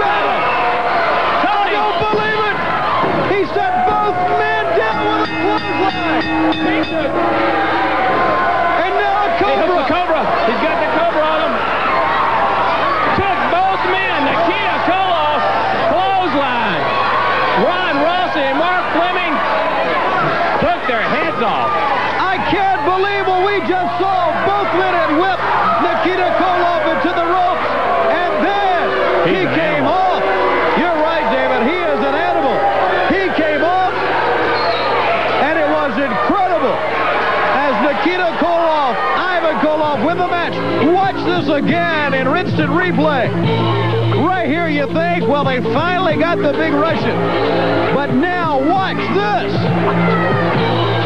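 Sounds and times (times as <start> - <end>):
crowd yelling and shouting: 0.0 - 51.0.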